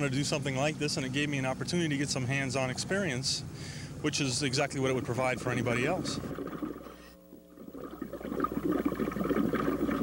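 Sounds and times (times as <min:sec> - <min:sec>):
underwater air bubbles gurgling: 0:05.1 - 0:10.0.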